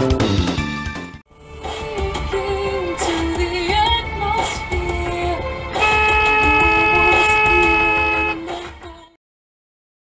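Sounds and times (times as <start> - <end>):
background music: 0.0 - 9.2
car horn blast: 5.8 - 8.5.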